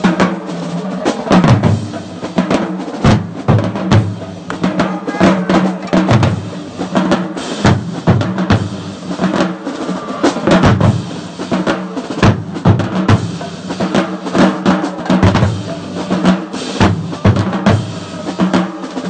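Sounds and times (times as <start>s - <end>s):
marching bass drums: 0.0s - 19.0s
snare drums: 0.0s - 19.0s.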